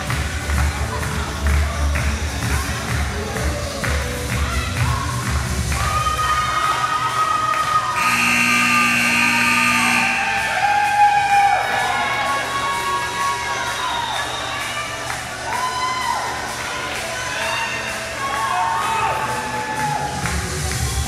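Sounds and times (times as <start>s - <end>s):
music over sound system: 0.0s - 6.0s, 8.0s - 13.6s, 16.4s - 21.0s
people cheering and whooping: 4.4s - 21.0s.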